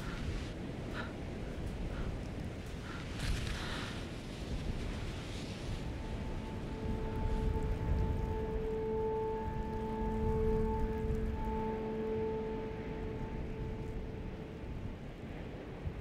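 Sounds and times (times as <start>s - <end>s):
low rumbling drone: 5.3s - 16.0s
held musical note: 5.7s - 15.3s.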